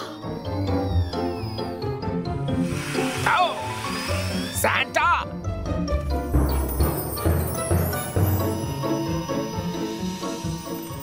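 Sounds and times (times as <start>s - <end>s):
cartoon background music: 0.0s - 11.0s
hissing sound effect: 2.5s - 4.7s.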